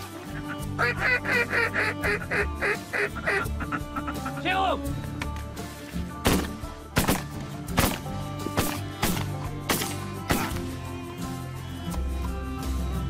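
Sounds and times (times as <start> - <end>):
background music: 0.0 - 13.0
shotgun shots: 6.2 - 10.6.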